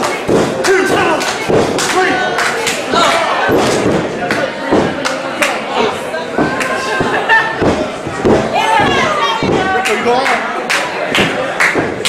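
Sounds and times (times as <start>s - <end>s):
crowd shouting and yelling: 0.0s - 12.0s.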